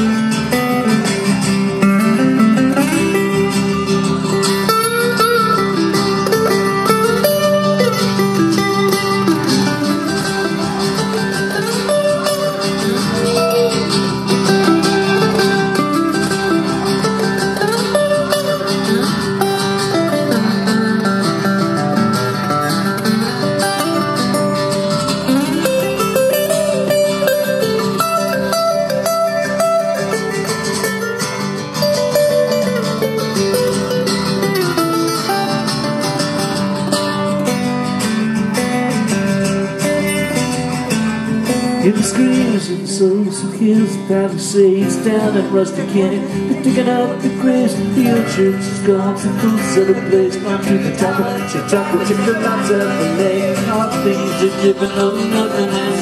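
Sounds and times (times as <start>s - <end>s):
acoustic guitar lead melody: 0.0s - 56.0s
strummed guitar chords: 0.0s - 56.0s.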